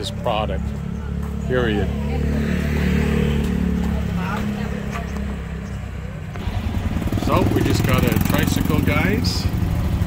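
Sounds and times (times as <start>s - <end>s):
small motorcycle engine running: 6.3s - 10.0s.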